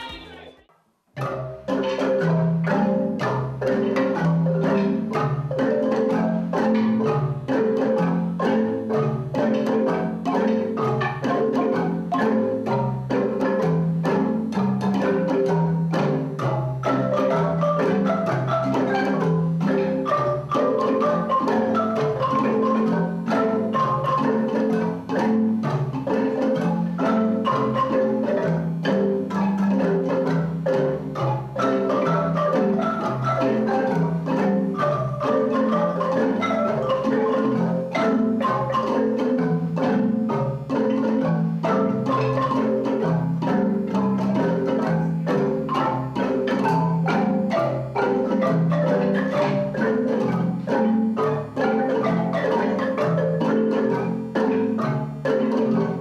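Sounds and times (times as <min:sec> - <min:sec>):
bass marimbas: 0:00.0 - 0:56.0
marimba ensemble playing: 0:00.0 - 0:56.0.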